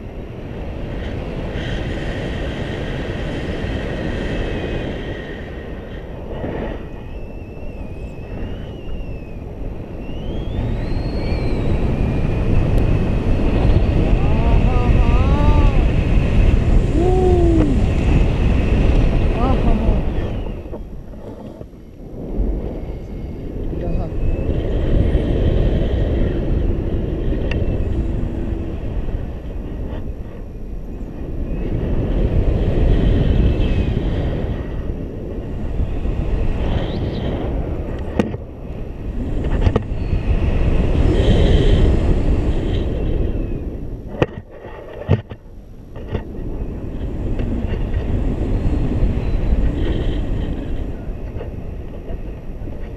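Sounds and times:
wind rushing over microphone: 0.0s - 52.9s.

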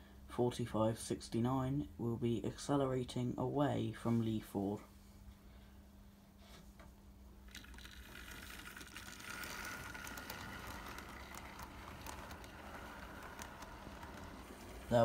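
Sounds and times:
small electric motor whining: 7.5s - 15.0s
wheels clicking on track: 7.6s - 15.0s.

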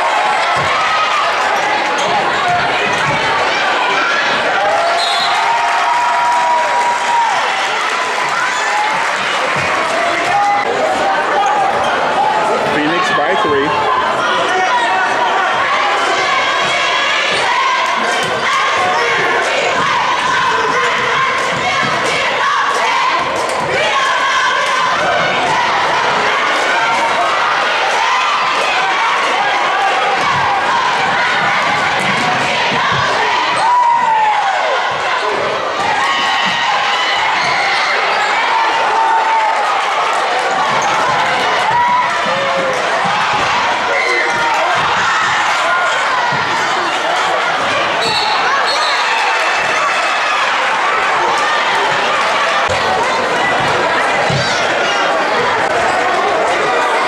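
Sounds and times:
spectators talking and calling out: 0.0s - 57.0s
sneakers squeaking: 1.6s - 3.4s, 37.4s - 38.5s, 47.8s - 50.1s.

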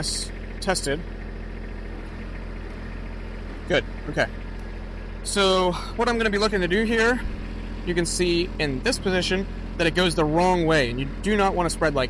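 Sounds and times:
tractor engine running: 0.0s - 12.0s.

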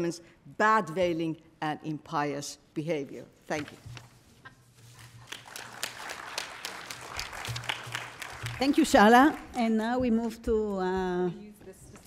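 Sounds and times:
audience applause: 5.2s - 9.4s.

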